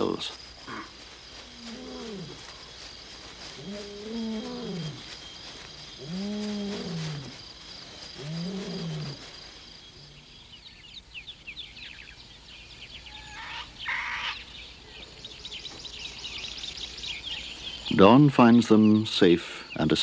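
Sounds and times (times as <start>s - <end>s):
birds chirping: 0.0s - 20.0s
night insects chirring: 0.0s - 20.0s
lions roaring: 3.6s - 5.1s, 6.0s - 7.4s, 8.1s - 9.2s.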